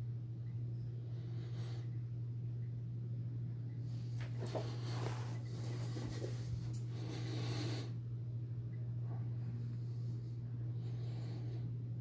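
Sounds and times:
low electrical hum: 0:00.0 - 0:12.0
scratching rustling handling noise: 0:04.0 - 0:06.9.

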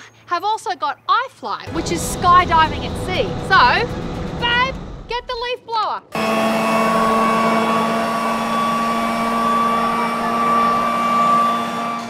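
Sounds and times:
leaf blower whine: 0:01.7 - 0:05.1, 0:06.2 - 0:12.0.

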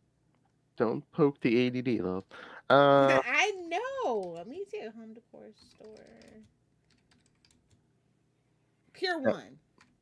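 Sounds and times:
keyboard typing: 0:05.6 - 0:07.8, 0:09.8 - 0:10.0.

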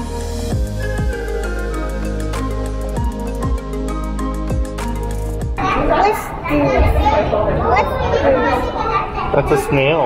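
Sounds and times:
background music: 0:00.0 - 0:06.1
young children chattering: 0:05.6 - 0:10.0.

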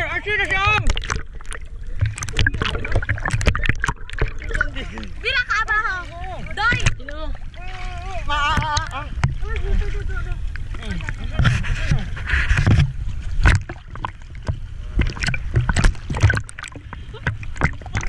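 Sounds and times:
low water rumble: 0:00.0 - 0:18.0
water splashing and sloshing: 0:00.0 - 0:18.0.

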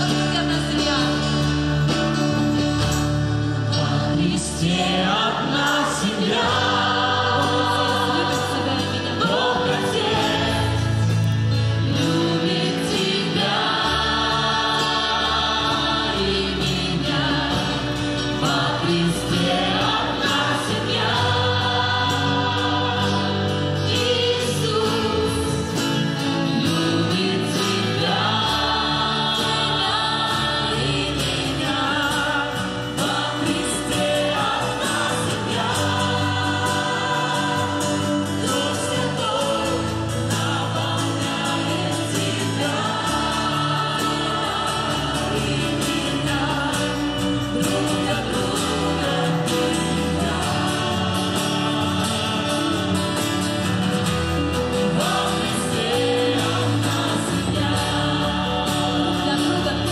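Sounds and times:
acoustic guitar: 0:00.0 - 0:59.9
choir singing worship song: 0:00.0 - 0:59.9
keyboard: 0:00.0 - 0:59.9
live band: 0:00.0 - 0:59.9.

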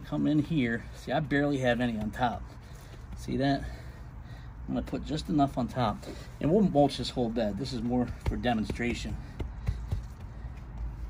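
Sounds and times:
gloved hand patting mulch: 0:00.0 - 0:04.0, 0:04.7 - 0:11.0.

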